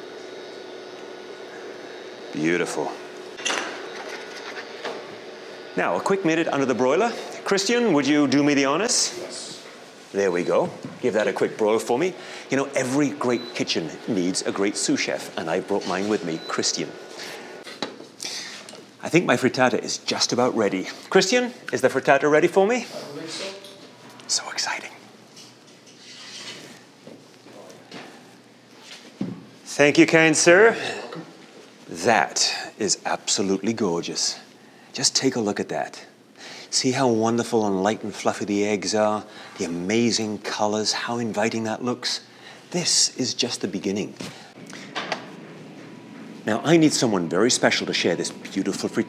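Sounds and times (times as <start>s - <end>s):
room noise hiss: 4.8s - 49.0s.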